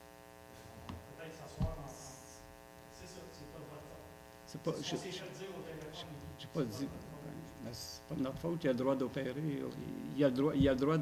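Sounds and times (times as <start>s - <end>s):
electrical mains hum: 0.0s - 11.0s
sharp low thump: 10.6s - 11.0s.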